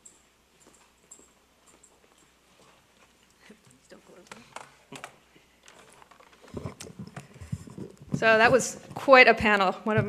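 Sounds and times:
faint clicks and taps: 0.0 - 10.0.

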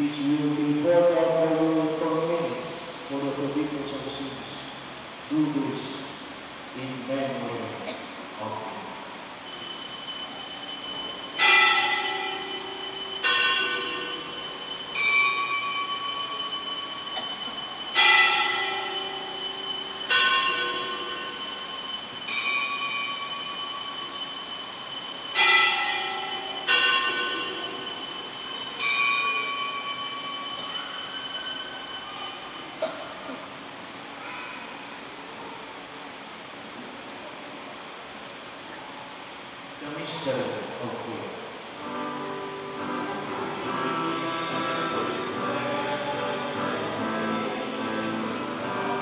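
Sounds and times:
steady high bell ringing: 9.4 - 32.9.

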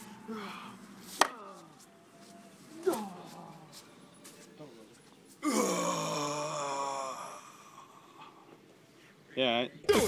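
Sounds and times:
man groaning: 5.4 - 8.0.

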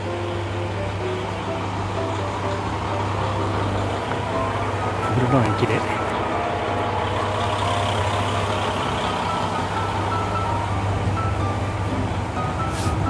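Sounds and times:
train engine humming: 0.0 - 13.0.

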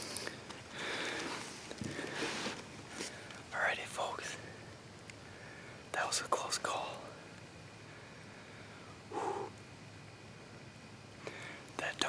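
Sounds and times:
man whispering: 3.5 - 4.6, 5.9 - 7.2, 11.8 - 12.0.

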